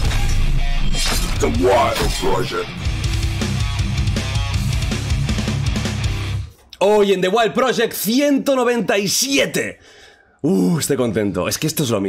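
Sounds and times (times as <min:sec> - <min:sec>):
crashing shattering effect: 0:00.0 - 0:02.6
heavy rock music: 0:00.0 - 0:06.6.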